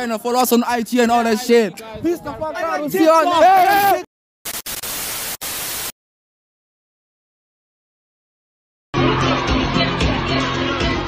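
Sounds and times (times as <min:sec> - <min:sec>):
static hiss: 0:04.5 - 0:05.9.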